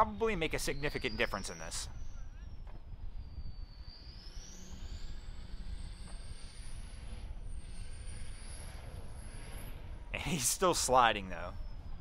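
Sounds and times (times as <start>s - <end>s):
high wavering whine: 0.0s - 12.0s.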